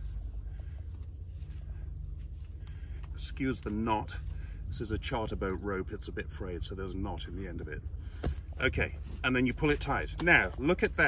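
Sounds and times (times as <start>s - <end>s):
rope rustling: 0.0s - 4.7s
steady low rumble: 0.0s - 11.0s.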